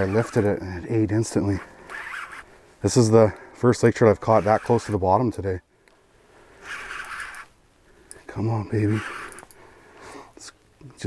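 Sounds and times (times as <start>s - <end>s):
fishing reel cranking: 0.0s - 2.5s, 4.1s - 5.1s, 6.6s - 7.5s, 8.8s - 9.6s.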